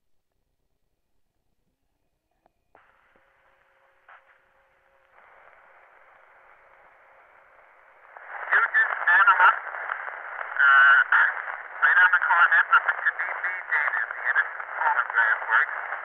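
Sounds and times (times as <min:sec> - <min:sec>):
phonograph surface hiss: 0:02.8 - 0:16.0.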